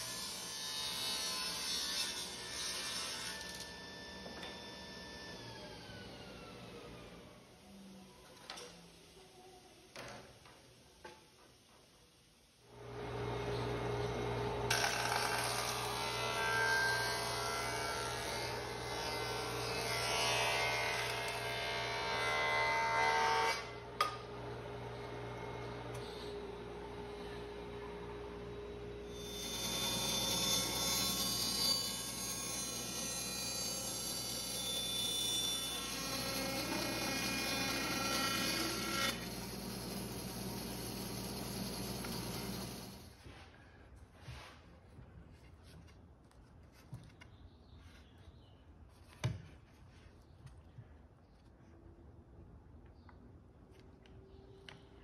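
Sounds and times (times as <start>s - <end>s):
table saw ripping a board: 0.0s - 5.2s, 14.7s - 23.7s, 29.1s - 43.2s
jointer cutting a board: 13.2s - 21.6s, 29.1s - 43.1s.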